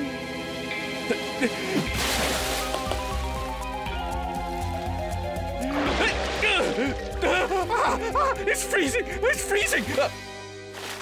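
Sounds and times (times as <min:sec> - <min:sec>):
background music: 0:00.0 - 0:11.0
big water splash: 0:01.8 - 0:03.4, 0:05.6 - 0:06.9.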